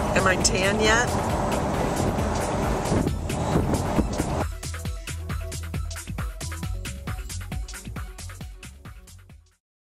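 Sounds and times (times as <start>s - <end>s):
wind noise: 0.0s - 4.5s
road noise: 0.0s - 8.4s
music with a beat: 0.2s - 9.6s.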